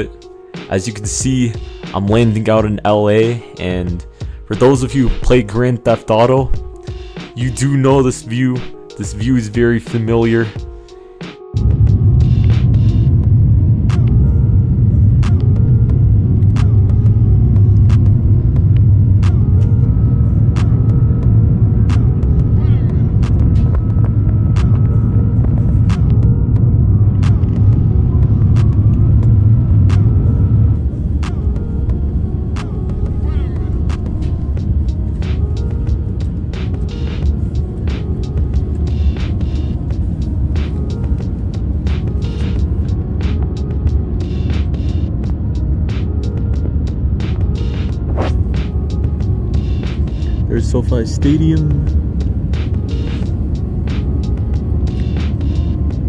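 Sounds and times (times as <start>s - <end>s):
airliner engine and airflow rumble: 0.0s - 56.0s
background music with steady beat: 0.0s - 56.0s.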